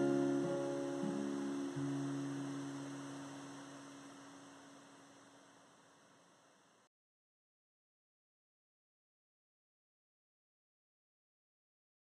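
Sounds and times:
acoustic guitar notes ringing: 0:00.0 - 0:03.9.

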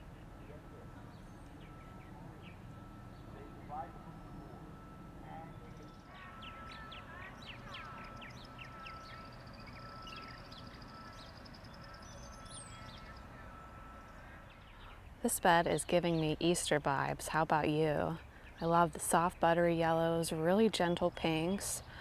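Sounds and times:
bird chirps: 0:00.0 - 0:15.2
faint steady tone: 0:00.0 - 0:22.0.

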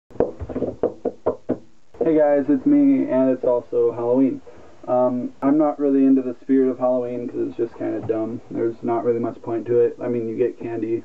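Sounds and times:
hands drumming on tabletop: 0:00.1 - 0:01.7.

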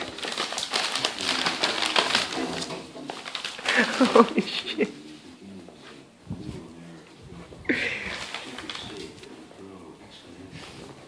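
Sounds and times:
paper bag rustling and clicking: 0:00.0 - 0:04.5, 0:07.8 - 0:09.4
stifled breathy laughter: 0:03.6 - 0:05.1, 0:07.7 - 0:08.4.

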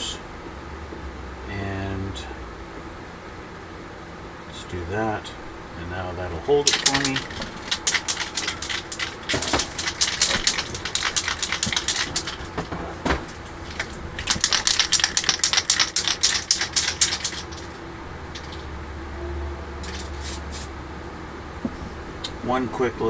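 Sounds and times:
spray can shaken rattling: 0:06.6 - 0:18.6, 0:19.8 - 0:20.6.

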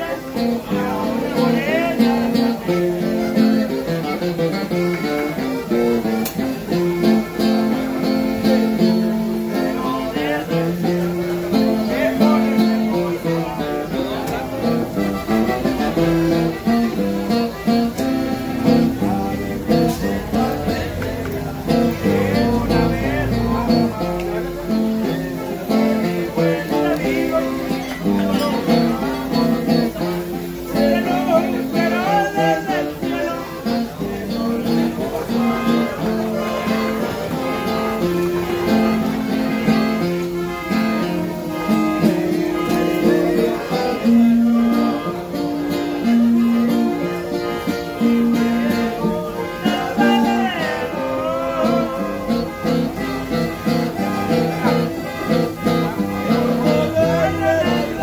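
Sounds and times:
men singing: 0:00.0 - 0:03.8, 0:06.0 - 0:16.6, 0:18.0 - 0:40.1, 0:40.9 - 0:58.0
acoustic guitar: 0:00.0 - 0:58.0
button accordion: 0:00.0 - 0:58.0.

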